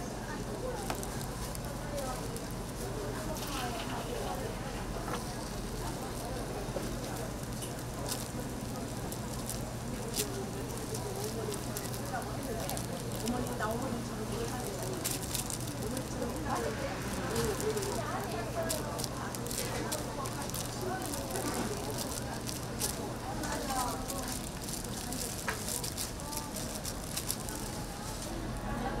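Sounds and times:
indistinct background voices: 0.0s - 29.0s
oil crackling and popping: 0.2s - 28.7s.

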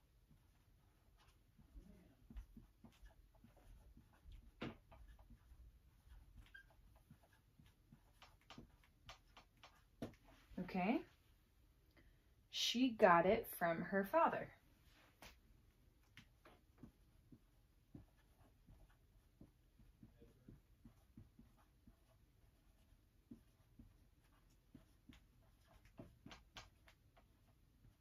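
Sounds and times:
marker scratching on whiteboard: 0.3s - 11.0s, 16.0s - 28.0s
marker squeak: 5.0s - 7.4s.

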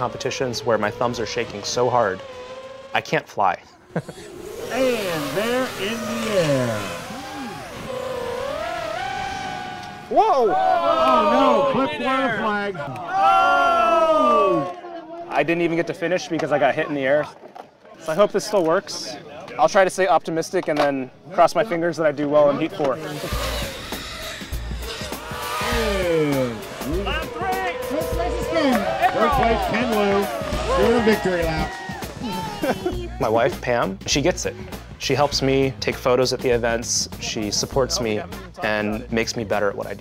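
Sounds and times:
quadcopter motors whining: 0.0s - 12.3s, 22.8s - 33.1s
background music with beat: 23.4s - 40.0s.

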